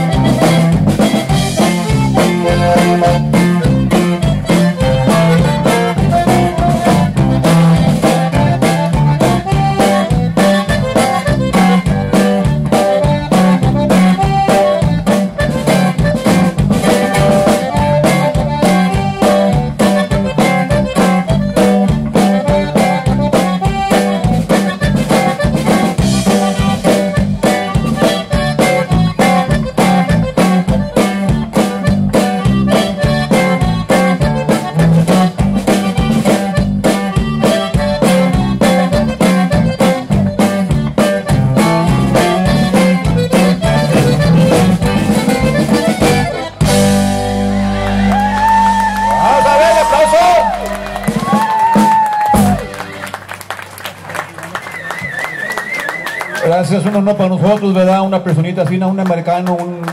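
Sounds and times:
polka band with accordions: 0.0s - 59.9s.

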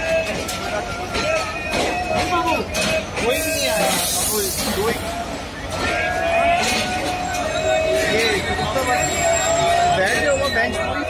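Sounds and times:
train drawing into station: 0.0s - 11.0s
voices on the platform: 0.0s - 11.0s
loud hiss: 3.4s - 5.1s.

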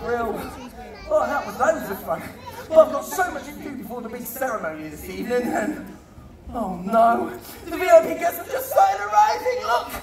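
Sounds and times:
chatter of many voices: 0.0s - 10.0s.

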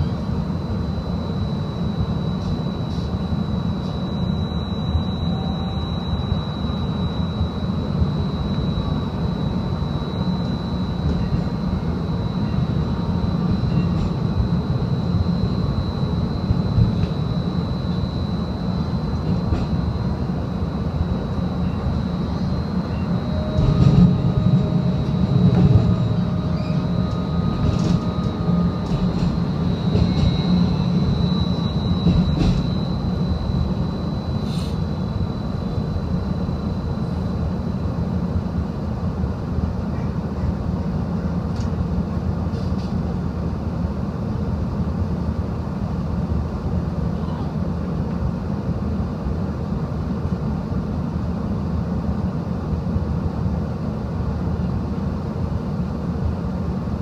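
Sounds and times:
high whine: 0.0s - 39.9s
streetcar wheels rumbling on rails: 1.5s - 51.2s.

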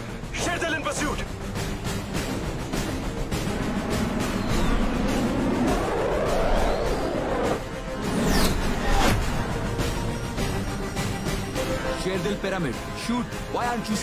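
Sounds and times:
action film score: 0.0s - 14.0s
jet engine passing: 3.4s - 7.7s.

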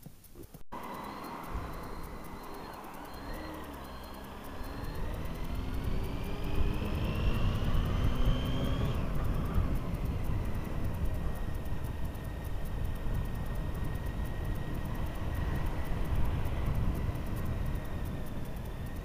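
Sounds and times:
motorcycle engine accelerating: 0.5s - 19.0s
wind rumble on microphone: 4.6s - 19.0s.

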